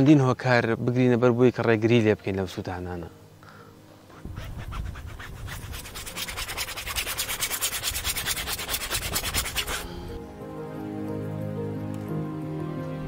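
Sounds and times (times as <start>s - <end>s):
paintbrush scrubbing on canvas: 4.1s - 10.1s.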